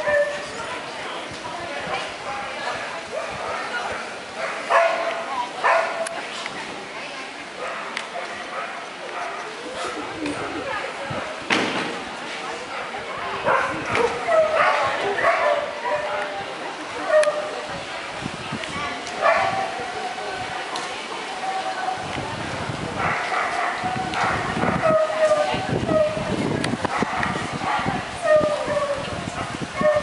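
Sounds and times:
people's voices: 0.0 - 30.0
dog barking: 4.4 - 6.1, 13.4 - 16.0, 19.2 - 19.6, 23.0 - 26.2.

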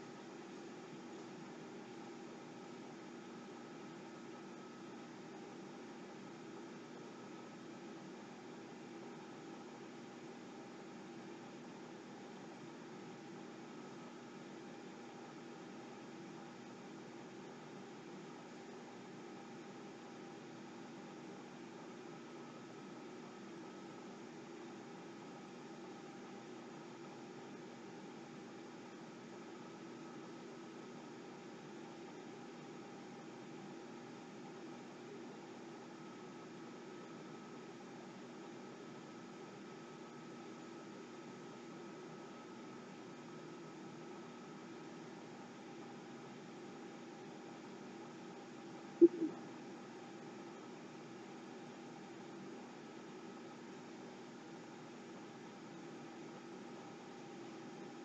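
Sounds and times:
faint room hiss: 0.0 - 58.0
light constant hum: 0.0 - 58.0.

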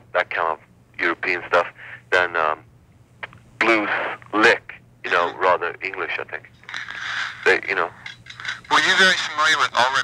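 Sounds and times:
man talking on telephone: 0.0 - 2.7, 3.6 - 6.5, 7.1 - 10.0.

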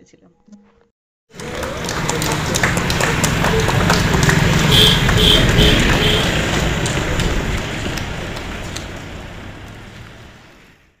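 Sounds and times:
people clapping: 1.3 - 10.3.

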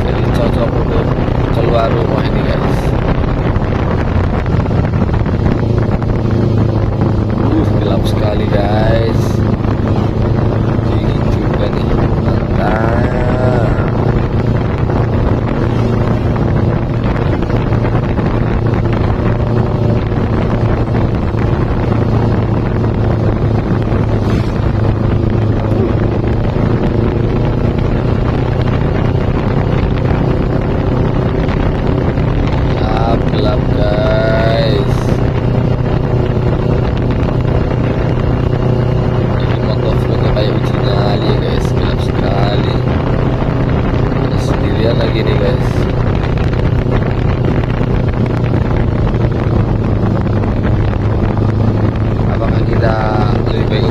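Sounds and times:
motorcycle engine running: 0.0 - 53.9
wind rushing over microphone: 0.0 - 53.9.

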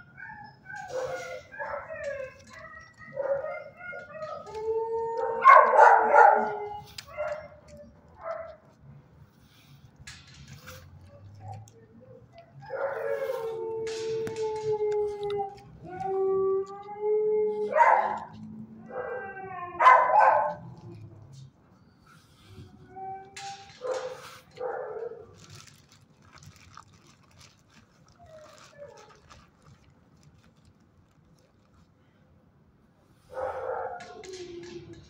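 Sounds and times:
dog howling: 0.0 - 8.0, 11.1 - 21.4, 33.4 - 35.0.

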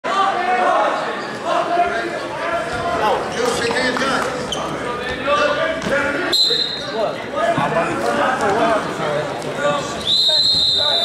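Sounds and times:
voices calling out in gymnasium: 0.0 - 11.0.

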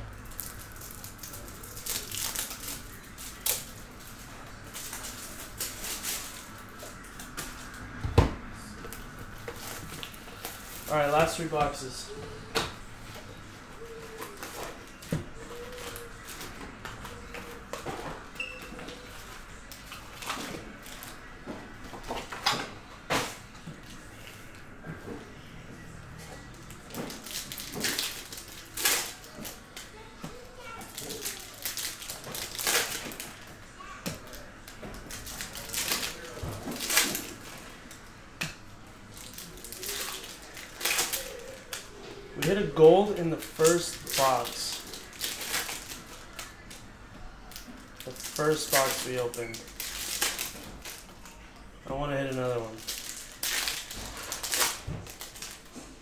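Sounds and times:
foil wrappers crinkling and tearing: 0.0 - 8.0, 8.9 - 12.4, 13.7 - 21.2, 26.4 - 38.0, 39.1 - 55.8.

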